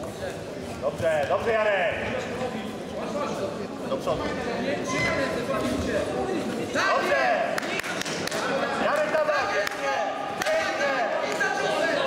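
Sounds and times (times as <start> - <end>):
men calling out in echoing hall: 4.7 - 12.0.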